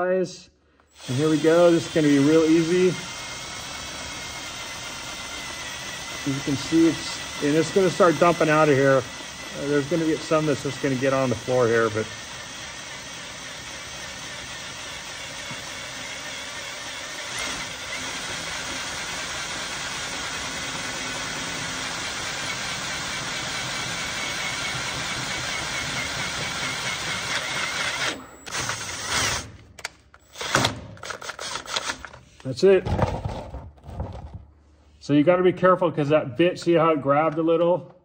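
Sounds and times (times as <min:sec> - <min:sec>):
power drill drilling into metal: 0:00.9 - 0:29.6, 0:30.2 - 0:32.2.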